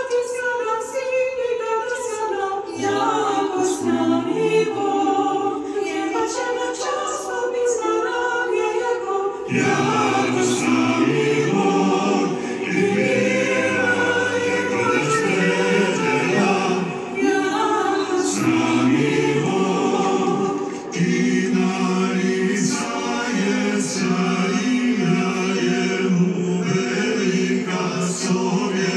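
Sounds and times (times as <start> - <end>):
choir singing a cappella: 0.0 - 28.9.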